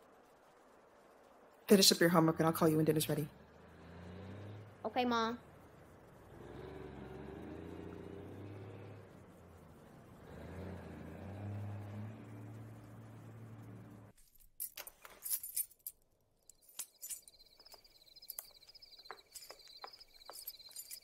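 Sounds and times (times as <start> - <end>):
low steady drone: 0.0 - 14.1
keys jangling in door lock: 14.2 - 21.0.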